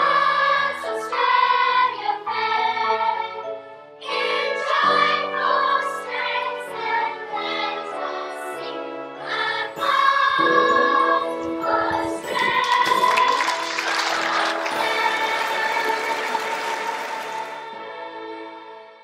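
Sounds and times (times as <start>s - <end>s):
choir singing: 0.0s - 19.0s
applause: 12.3s - 17.8s.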